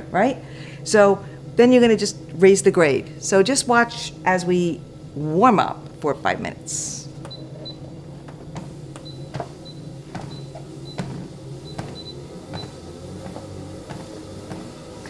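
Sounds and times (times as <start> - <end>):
treadmill motor hum: 0.0 - 15.0
footfalls on treadmill belt: 8.2 - 15.0.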